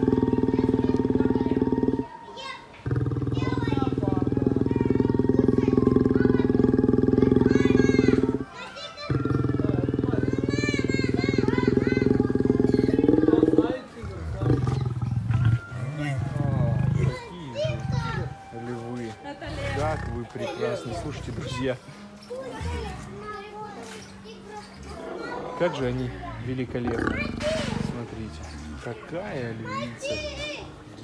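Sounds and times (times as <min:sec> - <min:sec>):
lion growling: 0:00.0 - 0:02.1, 0:02.8 - 0:18.6, 0:19.4 - 0:21.8, 0:24.8 - 0:29.0.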